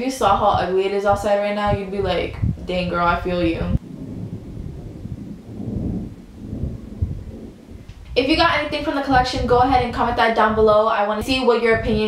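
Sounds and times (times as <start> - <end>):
rolling thunder rumble: 0.0 - 12.0.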